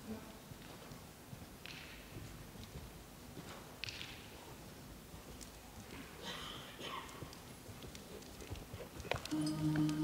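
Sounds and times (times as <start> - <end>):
muffled horse hoofbeats: 0.5 - 10.0.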